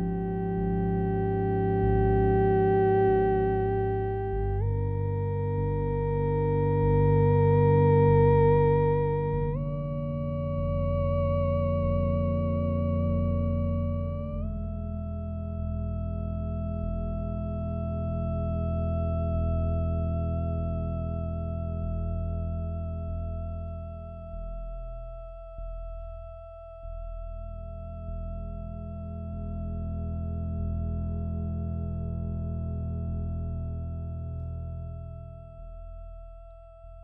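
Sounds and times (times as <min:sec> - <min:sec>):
low pulsing electronic drone: 0:00.0 - 0:37.0.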